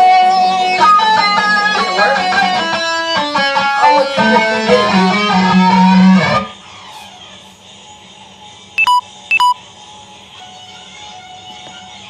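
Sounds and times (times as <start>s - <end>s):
guitar playing: 0.0s - 6.5s
short electronic beeps: 8.8s - 9.6s.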